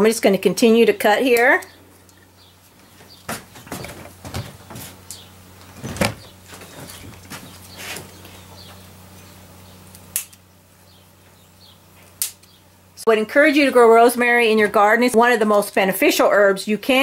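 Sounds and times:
faint steady hum: 0.0s - 17.0s
scissors snipping stems: 9.9s - 10.4s.

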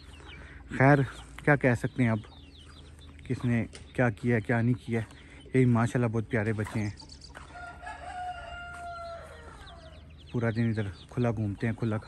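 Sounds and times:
rooster crowing: 7.5s - 10.0s.

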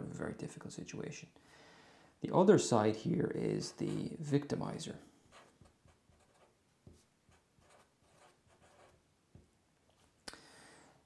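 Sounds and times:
marker pen writing: 5.3s - 9.4s.

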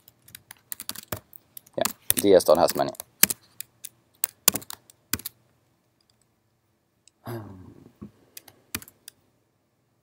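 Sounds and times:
computer keyboard key clicks: 0.0s - 5.3s, 8.4s - 9.2s.

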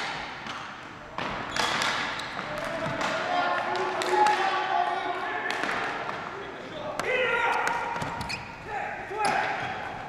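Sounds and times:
hockey sticks and ball clacking: 0.0s - 10.0s.

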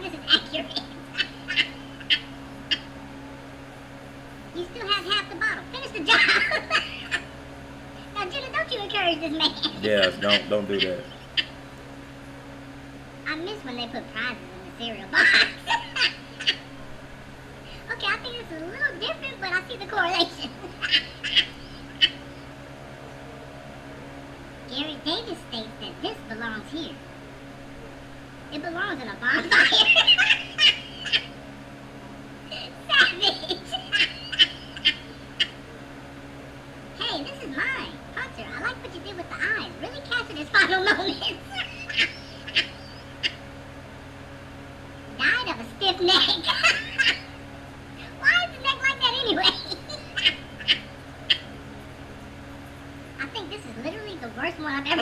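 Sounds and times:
high-pitched wordless voice: 0.0s - 1.0s, 4.6s - 6.7s, 8.0s - 11.0s, 13.3s - 15.8s, 17.7s - 20.7s, 24.7s - 27.0s, 28.5s - 29.7s, 37.0s - 42.1s, 45.2s - 46.8s, 48.0s - 50.2s, 53.2s - 55.0s
low room hum: 0.0s - 55.0s
man laughing: 5.3s - 7.2s, 9.6s - 11.2s, 29.4s - 31.3s, 32.5s - 35.0s, 46.2s - 47.3s.

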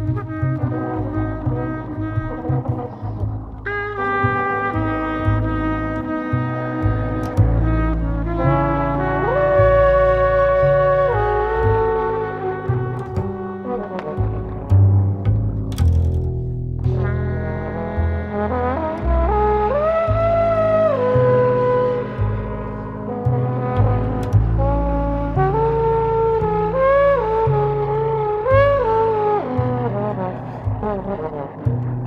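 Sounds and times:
trombone and trumpets playing: 0.0s - 15.2s, 16.9s - 32.0s
held brass tones: 0.0s - 16.2s, 16.8s - 32.0s
double bass plucking low notes: 0.0s - 32.0s.

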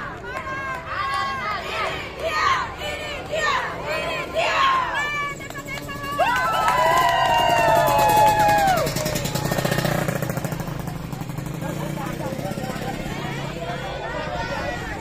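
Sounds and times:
quieter mixed voices: 0.0s - 15.0s
women chanting in unison: 0.2s - 5.4s.

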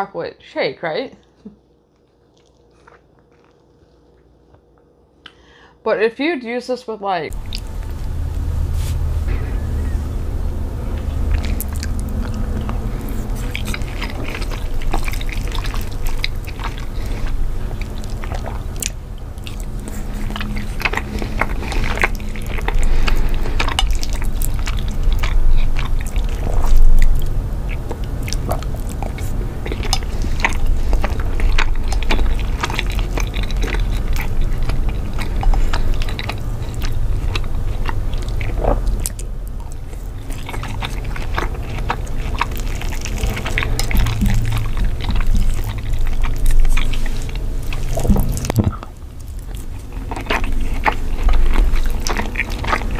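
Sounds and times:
wet chewing and mouth clicks: 1.2s - 5.4s, 7.3s - 52.9s
steady low rumble: 7.2s - 52.9s.

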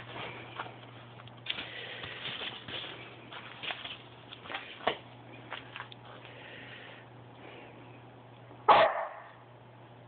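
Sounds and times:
dog barking: 8.7s - 9.4s.

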